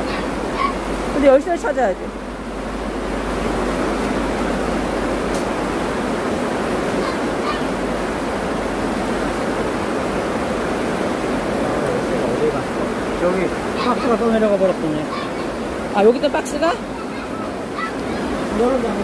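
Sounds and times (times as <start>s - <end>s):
water rushing: 0.0s - 19.0s.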